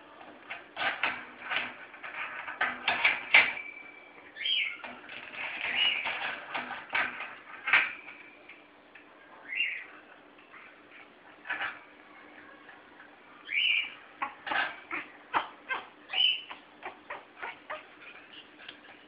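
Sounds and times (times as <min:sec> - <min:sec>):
parrot chirping: 0:03.6 - 0:04.8, 0:09.4 - 0:09.9, 0:13.4 - 0:14.3, 0:14.9 - 0:18.4.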